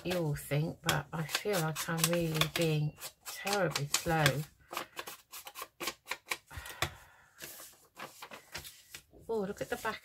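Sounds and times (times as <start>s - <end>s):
paper rustling: 1.2s - 6.4s, 7.4s - 10.0s.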